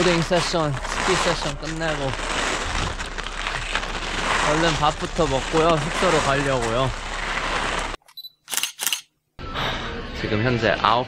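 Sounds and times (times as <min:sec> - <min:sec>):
camera shutter clicks: 0:08.5 - 0:09.1.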